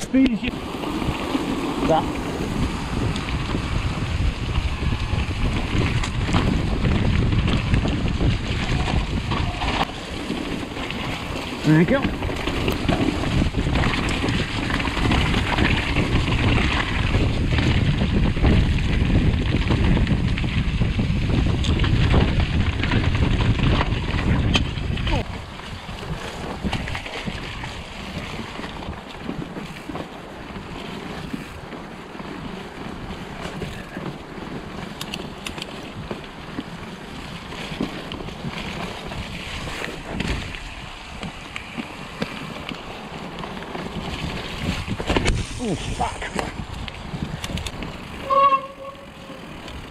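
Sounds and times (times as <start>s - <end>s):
bike tyre noise: 0.0s - 49.9s
wind buffeting microphone: 0.0s - 49.9s
bike clicks and knocks: 4.5s - 45.5s, 46.2s - 48.3s, 49.0s - 49.9s.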